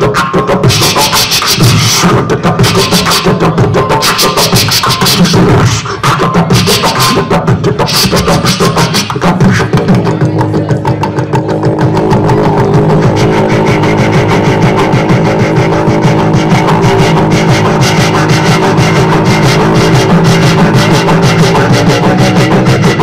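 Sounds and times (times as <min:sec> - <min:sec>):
beatboxing into a microphone: 0:00.0 - 0:23.0.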